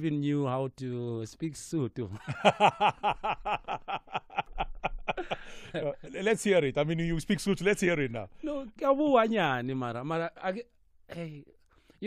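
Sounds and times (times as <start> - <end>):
man laughing heartily: 2.2 - 6.2.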